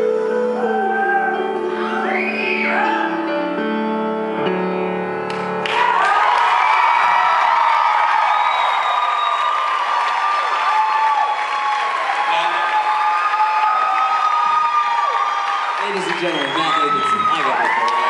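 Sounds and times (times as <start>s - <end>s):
audience cheering and applauding: 5.3s - 18.0s
high whoops and screams: 5.6s - 18.0s.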